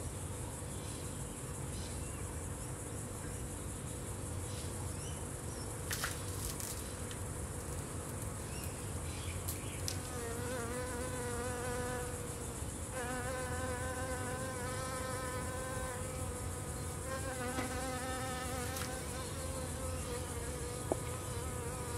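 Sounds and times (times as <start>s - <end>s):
flying insect buzzing: 9.8s - 21.9s.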